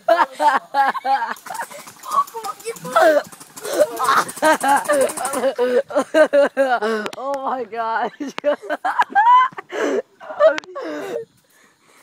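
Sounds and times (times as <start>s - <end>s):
excited voices talking and calling: 0.0s - 11.4s.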